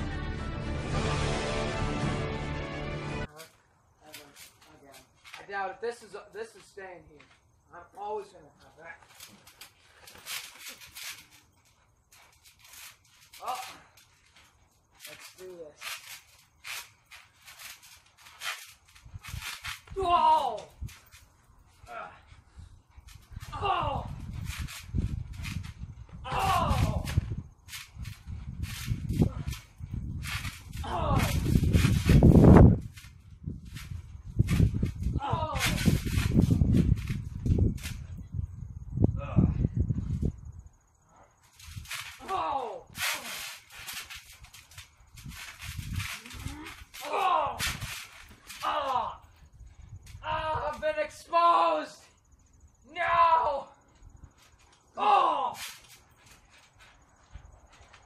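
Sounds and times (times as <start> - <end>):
trampoline thudding: 9.0 - 22.2, 23.0 - 38.2, 41.4 - 49.3.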